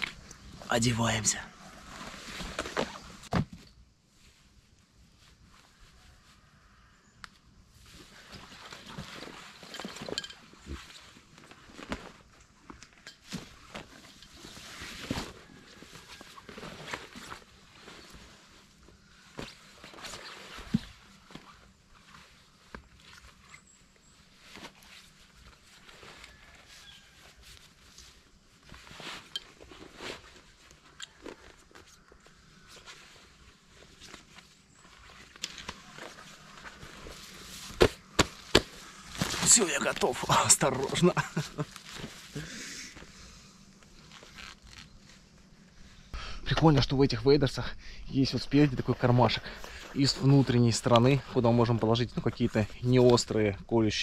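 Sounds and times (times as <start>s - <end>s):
rustling of wader material: 7.8s - 46.0s
shuffling: 24.2s - 46.0s.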